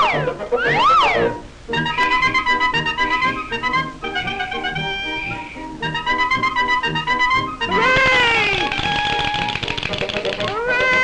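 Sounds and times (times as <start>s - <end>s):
cartoon music with rattling notes: 0.0s - 11.0s
cartoon cry of hooray: 7.7s - 8.7s, 10.5s - 11.0s.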